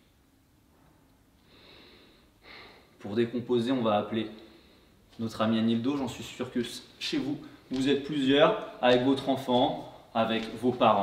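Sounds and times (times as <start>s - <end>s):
faint breathing: 0.8s - 3.0s, 4.4s - 5.2s.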